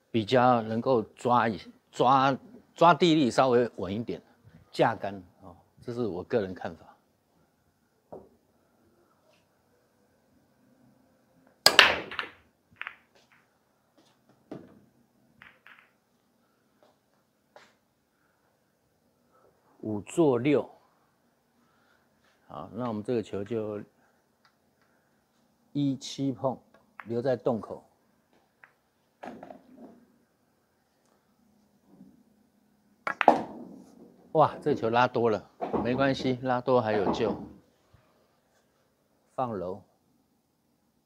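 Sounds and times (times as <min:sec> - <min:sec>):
cue ball cracking into racked balls: 0:11.6 - 0:13.5, 0:15.4 - 0:16.0, 0:33.0 - 0:34.7
sharp clicks of balls striking: 0:11.6 - 0:13.5, 0:15.4 - 0:16.0, 0:33.0 - 0:33.8
pool balls clattering: 0:11.7 - 0:13.5, 0:14.3 - 0:16.1, 0:28.5 - 0:30.1, 0:33.0 - 0:37.6.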